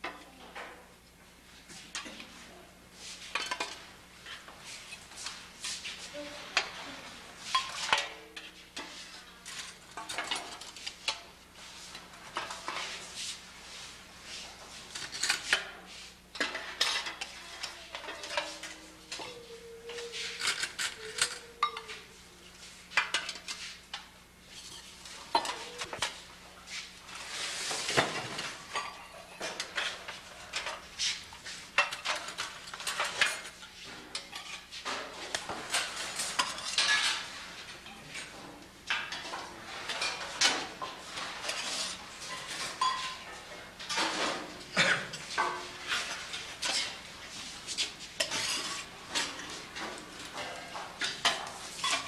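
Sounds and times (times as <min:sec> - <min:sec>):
dishes and utensils clattering: 0:03.2 - 0:11.3, 0:11.9 - 0:13.3, 0:14.3 - 0:52.0.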